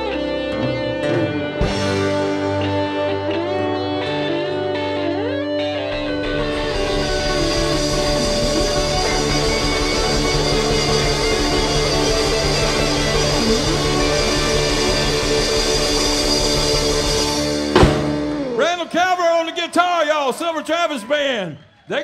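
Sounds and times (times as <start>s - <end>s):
live rock band: 0.0s - 18.8s
sharp drum hit: 17.6s - 18.6s.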